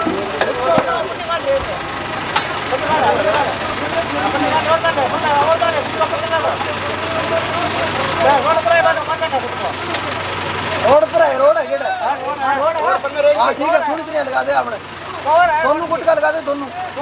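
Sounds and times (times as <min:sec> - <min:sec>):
men talking: 0:00.0 - 0:17.0
truck engine idling: 0:00.0 - 0:17.0.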